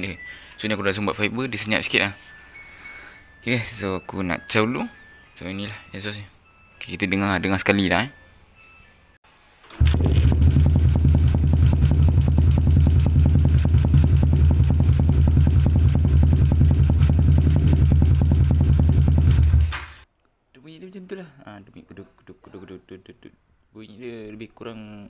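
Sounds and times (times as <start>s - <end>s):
motorcycle engine idling: 9.8s - 19.7s.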